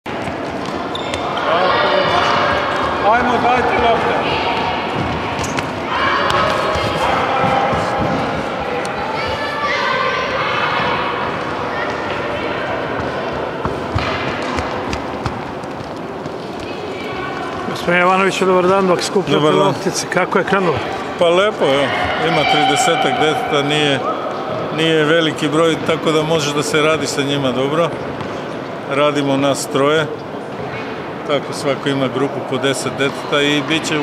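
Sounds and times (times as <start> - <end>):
children calling out: 4.1 - 13.4
balls bouncing on wooden floor: 4.4 - 8.6, 12.9 - 17.8.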